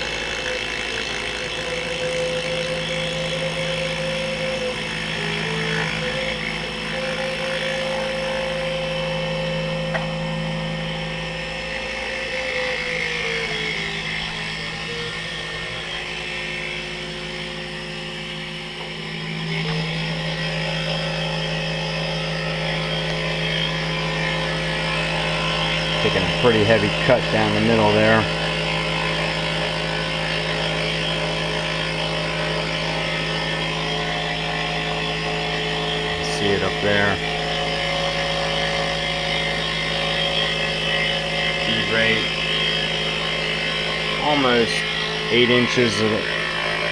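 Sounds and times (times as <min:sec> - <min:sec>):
mill motor humming: 0:00.0 - 0:46.9.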